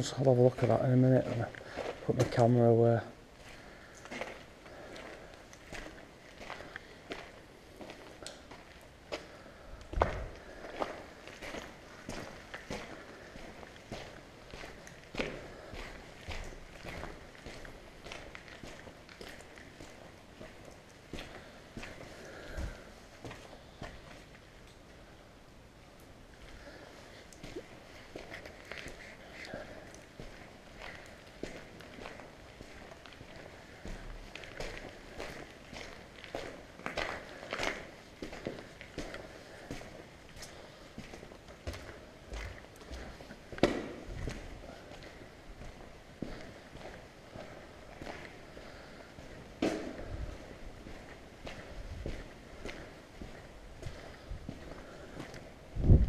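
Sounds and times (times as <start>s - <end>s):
footsteps on debris: 0.0s - 24.9s, 26.0s - 56.0s.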